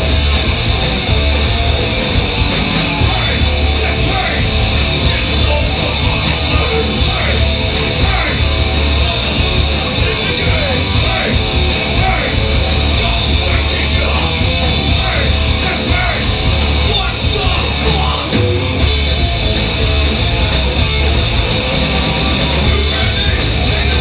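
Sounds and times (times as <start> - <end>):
punk rock band playing live: 0.0 - 24.0.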